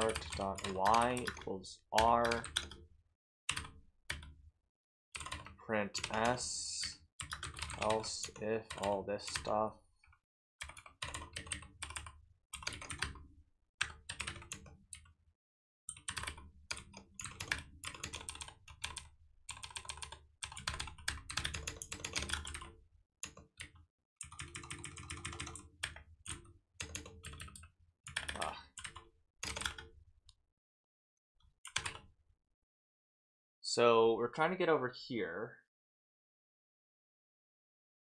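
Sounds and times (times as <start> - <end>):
computer keyboard typing: 0.0 - 2.8, 3.5 - 4.4, 5.2 - 9.6, 10.6 - 15.1, 15.9 - 29.9, 31.6 - 32.1.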